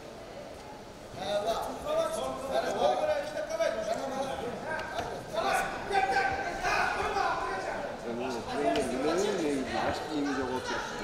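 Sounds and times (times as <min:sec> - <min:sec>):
people calling out and talking: 0:03.2 - 0:11.0.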